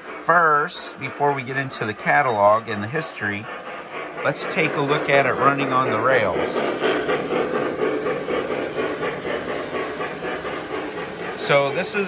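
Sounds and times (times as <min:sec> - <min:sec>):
model steam locomotive chuffing: 0:00.0 - 0:12.0
model train rolling on track: 0:00.0 - 0:12.0.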